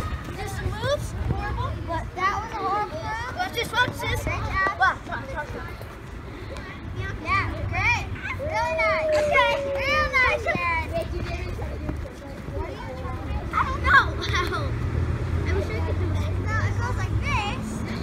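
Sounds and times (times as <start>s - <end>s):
children shouting and calling: 0.0s - 18.0s.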